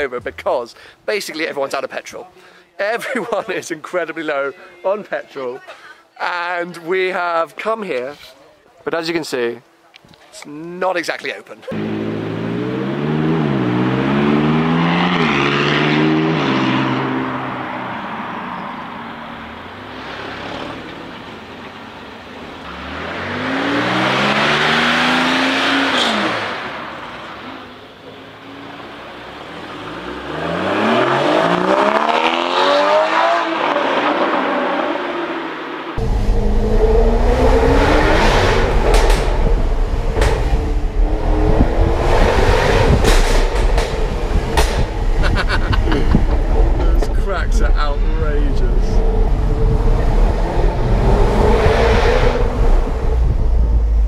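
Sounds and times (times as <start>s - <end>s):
sports cars accelerating: 11.7s - 54.0s.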